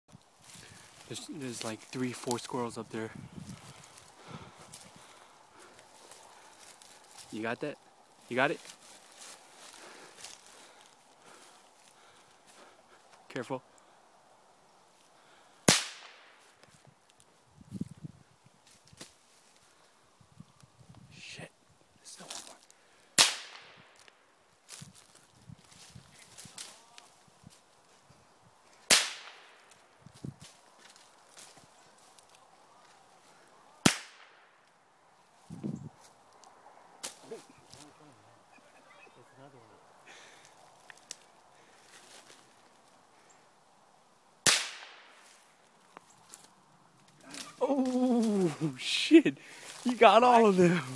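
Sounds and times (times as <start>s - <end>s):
rustling in leaf litter: 0.1s - 11.9s, 24.0s - 28.1s, 45.2s - 50.9s.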